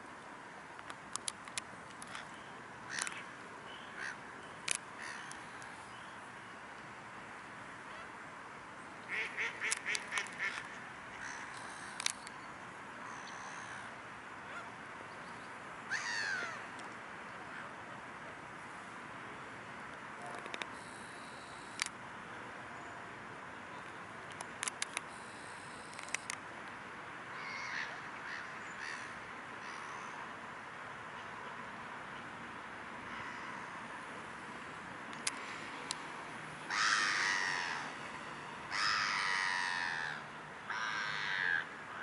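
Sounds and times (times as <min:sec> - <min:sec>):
steady background hiss: 0:00.0 - 0:42.0
bird harsh calls: 0:05.0 - 0:05.6.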